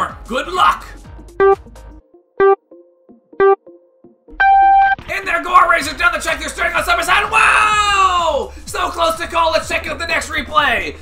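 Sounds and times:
electronic countdown beeps: 1.3s - 1.7s, 2.4s - 2.6s, 3.4s - 3.8s, 4.4s - 5.0s
long high beep: 1.4s - 1.6s, 4.4s - 5.0s.

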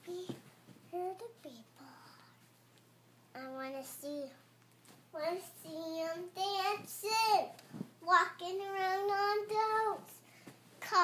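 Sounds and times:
little girl singing: 5.2s - 10.2s.

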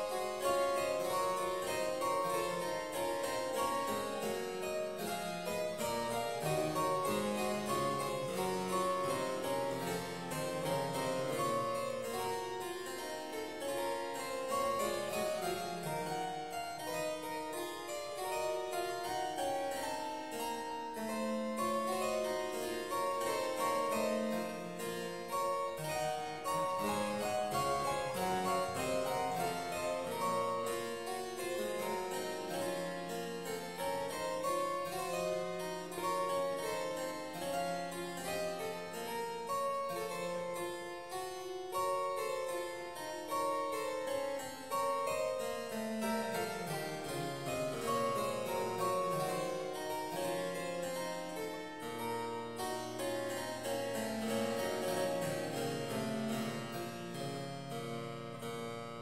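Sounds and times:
solo harpsichord piece: 0.0s - 59.0s.

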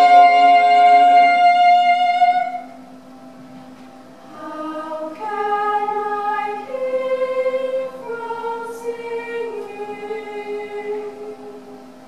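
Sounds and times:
girls' choir singing chords: 0.0s - 2.8s, 4.2s - 12.0s.

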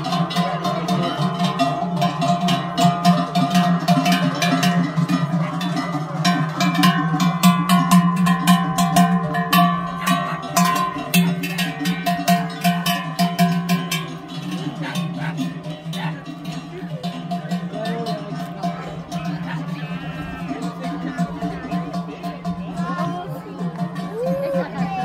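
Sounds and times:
cowbell clanking: 0.0s - 25.0s
music: 0.0s - 25.0s.

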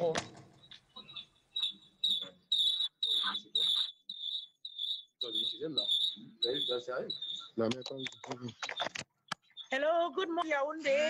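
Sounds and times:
garbled speech over audio feed: 0.0s - 4.4s, 5.2s - 11.0s
shrill high tone: 1.1s - 7.6s.

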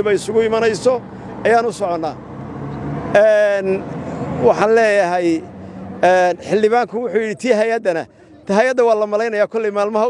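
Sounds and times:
man speaking: 0.0s - 2.2s, 3.2s - 3.8s, 4.4s - 10.0s.

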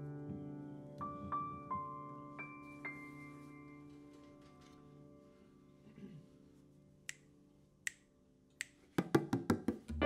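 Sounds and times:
finger snaps: 7.1s - 9.3s.

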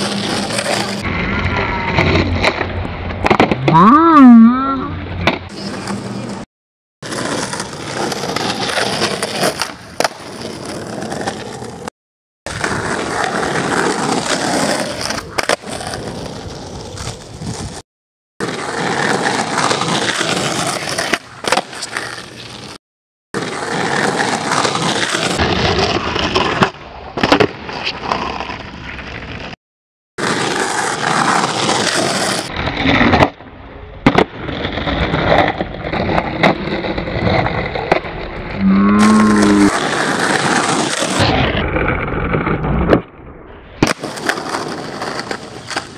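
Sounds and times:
skateboard wheels rolling on asphalt: 0.0s - 3.9s, 4.9s - 11.9s, 12.5s - 17.8s, 18.4s - 22.8s, 23.4s - 29.6s, 30.2s - 45.9s
skateboard clacking on ground: 34.0s - 38.2s, 43.8s - 45.9s.

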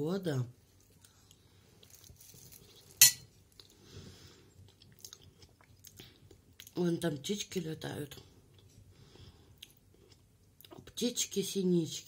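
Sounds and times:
person chewing: 0.8s - 3.8s, 4.5s - 6.8s, 9.5s - 10.8s
metal spoon clinking on glass plate: 3.0s - 3.2s.

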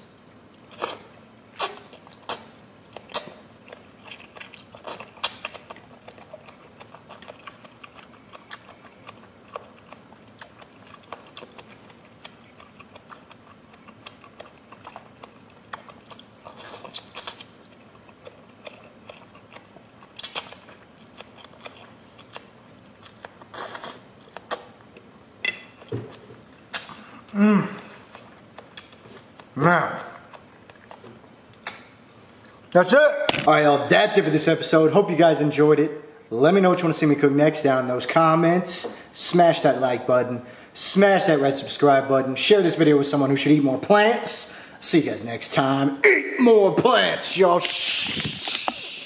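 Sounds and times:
chewing noodles: 0.4s - 25.1s.

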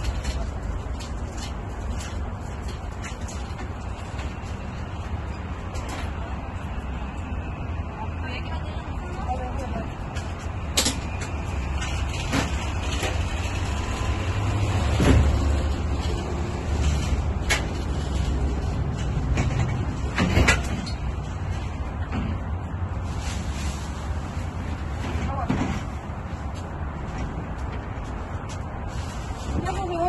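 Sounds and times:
objects knocking in van cargo area: 14.4s - 15.9s, 19.0s - 21.1s.

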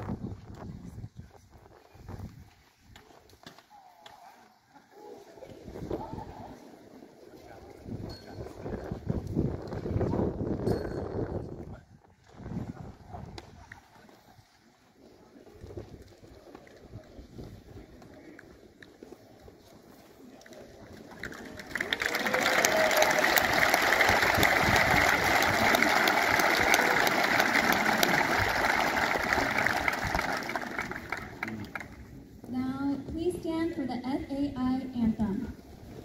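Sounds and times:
audience applauding: 21.1s - 32.1s.

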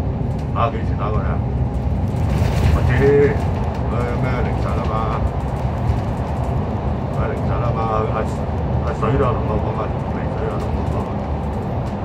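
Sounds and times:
bus engine and tyres rumbling: 0.0s - 12.0s.

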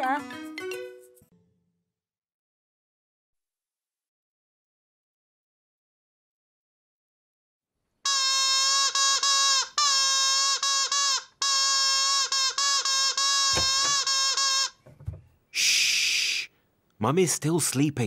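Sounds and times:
toy trumpet notes: 8.0s - 14.8s
short hiss: 15.6s - 16.6s.

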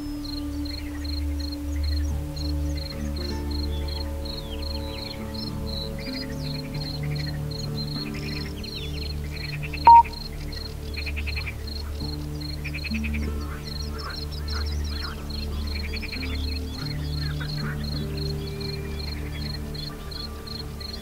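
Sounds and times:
calm ambient music: 0.0s - 21.0s
high pulsing chirp: 3.5s - 13.0s
loud high beep: 9.9s - 10.2s.

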